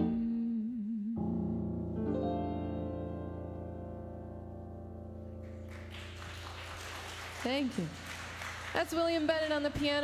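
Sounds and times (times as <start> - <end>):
woman singing with vibrato: 0.0 - 1.4
grand piano chords: 0.0 - 6.8.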